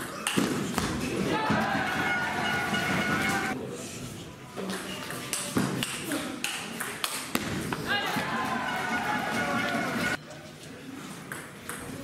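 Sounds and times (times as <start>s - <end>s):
spectators' voices: 1.1s - 4.0s, 7.8s - 10.2s
table tennis ball bouncing: 5.3s - 7.5s.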